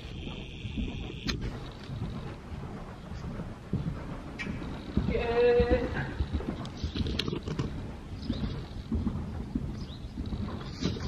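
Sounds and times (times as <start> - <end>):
horse hooves thudding on sand: 0.0 - 11.0.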